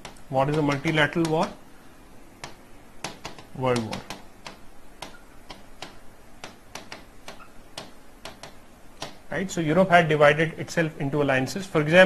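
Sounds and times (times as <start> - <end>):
pen tapping on glass screen: 0.0 - 1.6, 2.4 - 9.3.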